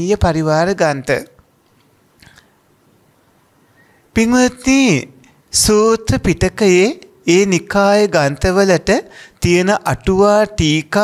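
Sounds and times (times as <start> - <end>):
man speaking: 0.0 - 1.4, 4.1 - 11.0.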